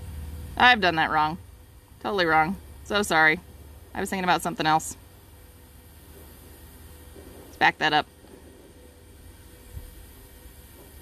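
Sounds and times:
faint hiss and low rumble: 0:00.0 - 0:11.0.

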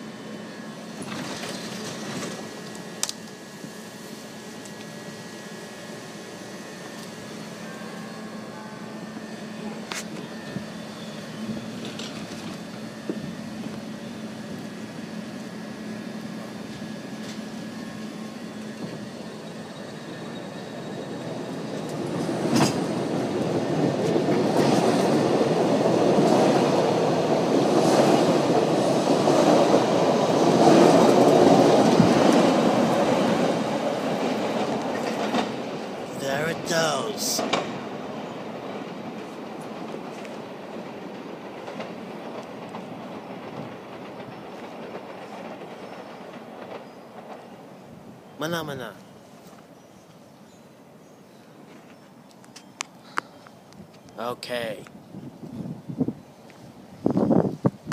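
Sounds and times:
electric train humming: 0:00.0 - 0:57.9
train wheel and track noise: 0:00.0 - 0:57.9.

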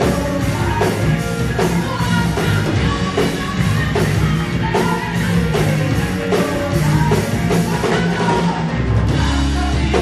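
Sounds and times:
drum kit: 0:00.0 - 0:10.0
live worship band music: 0:00.0 - 0:10.0.

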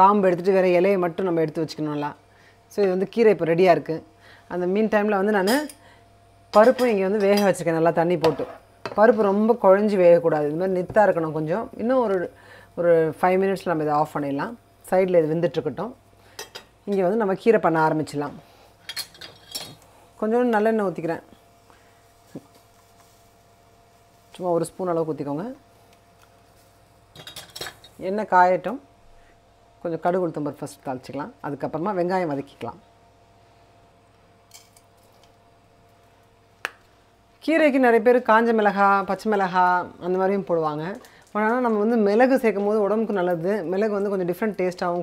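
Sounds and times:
woman speaking: 0:00.0 - 0:05.8, 0:06.6 - 0:16.0, 0:16.9 - 0:18.4, 0:20.2 - 0:21.4, 0:24.4 - 0:25.6, 0:28.0 - 0:28.9, 0:29.8 - 0:32.8, 0:37.4 - 0:45.0
faint induction hob hum: 0:00.0 - 0:45.0
soft hiss: 0:04.0 - 0:30.5.

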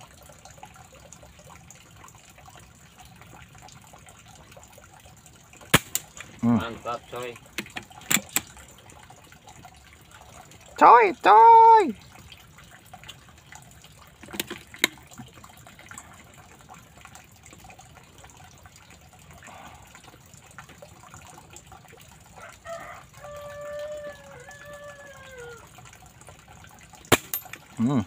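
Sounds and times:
rooster crowing: 0:22.4 - 0:25.7.

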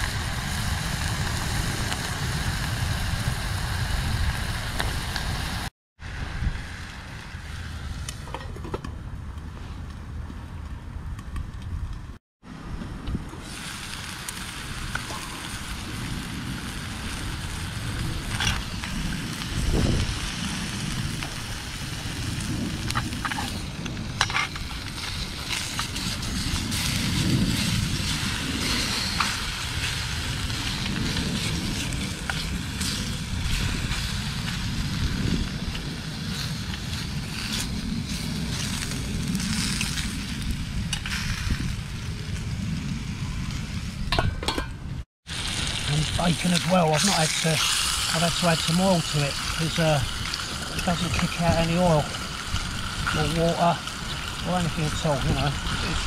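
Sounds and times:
bacon sizzling in frying pan: 0:00.0 - 0:05.7, 0:13.4 - 0:42.5, 0:45.2 - 0:56.0.

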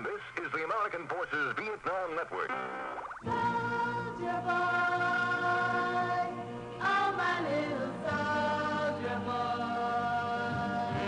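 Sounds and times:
group of voices singing a chord: 0:03.3 - 0:11.0.

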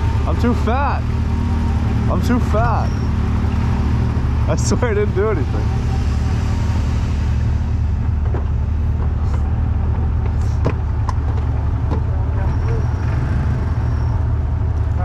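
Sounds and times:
engine idling low rumble: 0:00.0 - 0:15.0.

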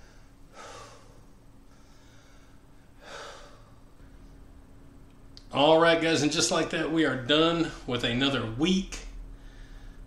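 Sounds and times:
man breathing hard: 0:00.0 - 0:04.4, 0:09.3 - 0:10.0.

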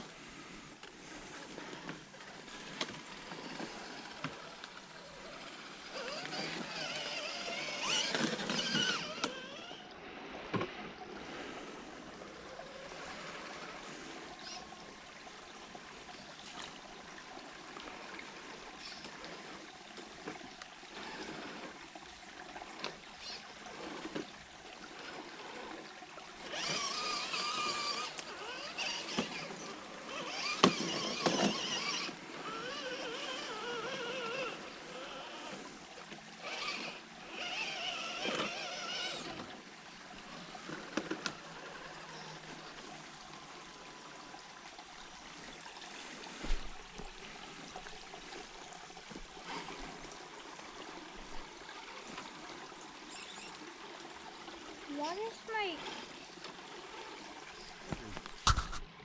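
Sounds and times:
electric motor and gear whine: 0:00.0 - 0:14.9, 0:22.8 - 0:44.3
creek trickling: 0:00.0 - 0:59.0.

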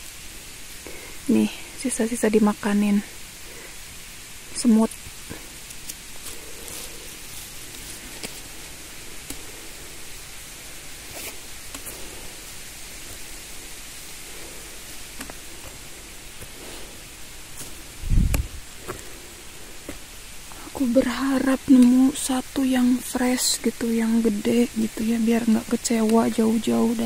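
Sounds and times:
faint crackles: 0:00.0 - 0:27.0
steady hiss: 0:00.0 - 0:27.0
footsteps rustling through dry leaves: 0:03.2 - 0:22.1.

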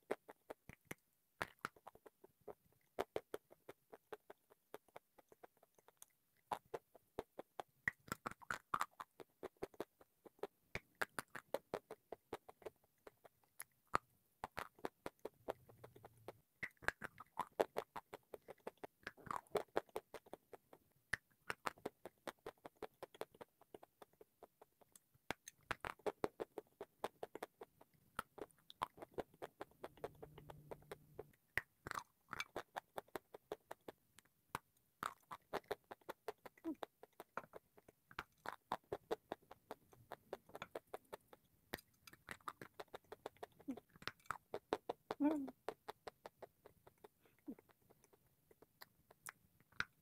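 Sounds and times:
person chewing crunchy food: 0:12.6 - 0:20.3, 0:31.8 - 0:33.8, 0:40.1 - 0:45.1.

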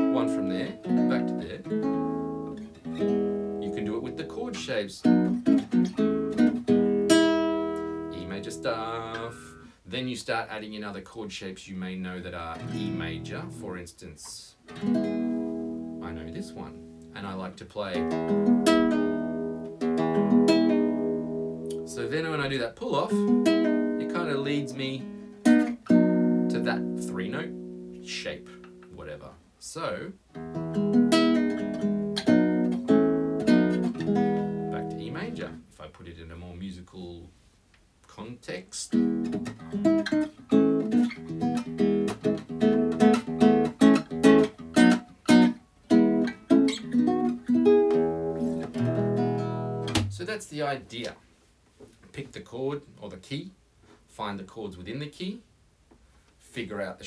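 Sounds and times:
fingerpicked classical guitar: 0:00.0 - 0:09.7, 0:12.5 - 0:13.8, 0:14.7 - 0:17.2, 0:17.8 - 0:29.0, 0:30.3 - 0:35.6, 0:38.9 - 0:50.2.

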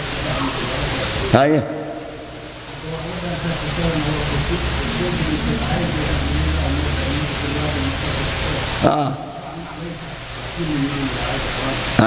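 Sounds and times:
loud steady hiss: 0:00.0 - 0:12.0
faint man's voice: 0:02.7 - 0:12.0.

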